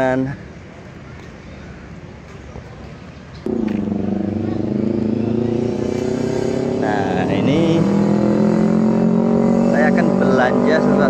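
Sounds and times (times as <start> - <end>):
faint street background: 0.0 - 11.0
vehicle engine running: 3.5 - 11.0.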